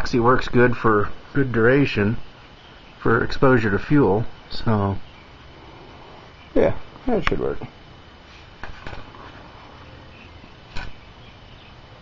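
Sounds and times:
low background hiss: 0.0s - 12.0s
sharp click: 10.7s - 11.0s.

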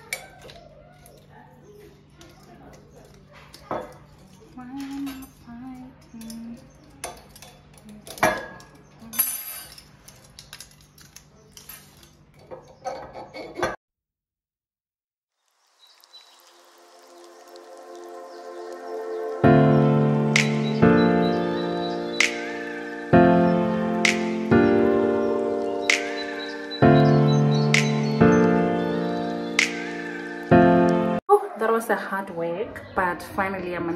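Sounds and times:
music: 17.3s - 31.2s.

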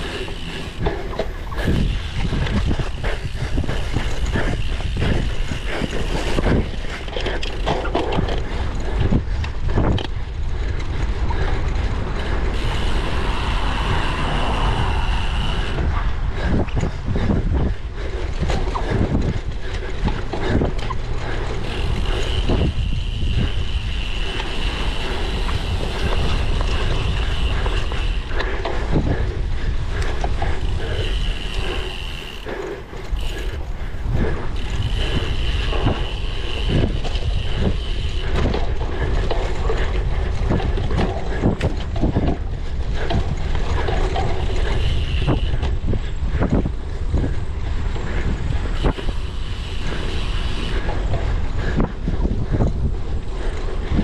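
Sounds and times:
bike knocking and rattling: 0.0s - 54.0s
wind buffeting microphone: 0.0s - 54.0s.

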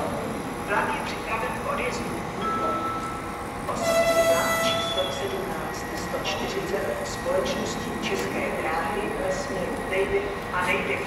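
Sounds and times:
train horn: 3.8s - 5.1s.

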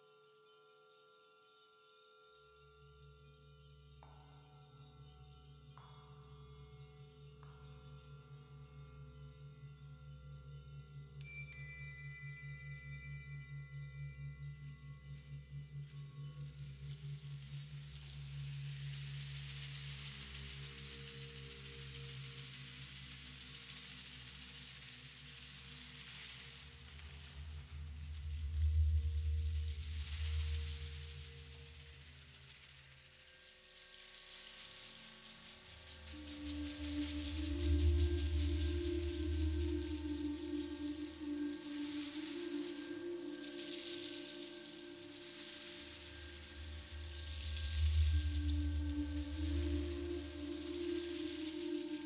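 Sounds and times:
ambient percussion and keyboard music: 0.0s - 33.0s, 33.6s - 52.0s.

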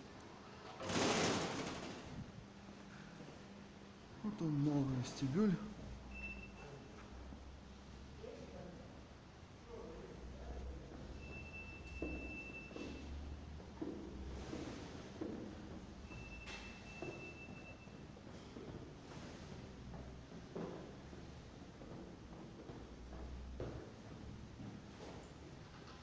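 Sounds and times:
footsteps on stone floor: 18.6s - 25.6s.

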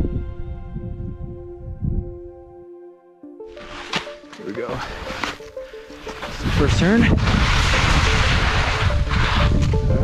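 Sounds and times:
wind gusting over microphone: 0.0s - 2.4s, 6.2s - 10.0s.

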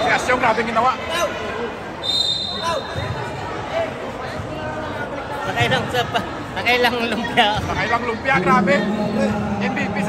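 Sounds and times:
voices chattering indoors: 0.0s - 10.0s.

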